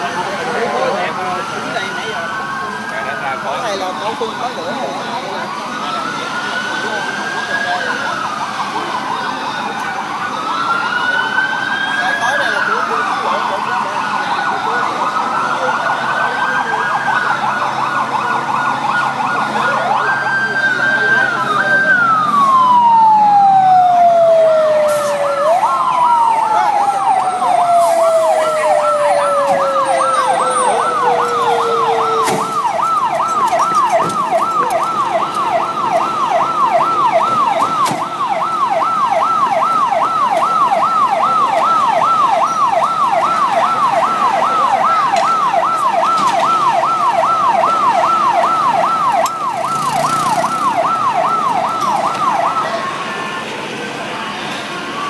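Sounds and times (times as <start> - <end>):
fire engine sirens wailing: 0.0 - 55.0
siren fast warble: 10.3 - 53.3.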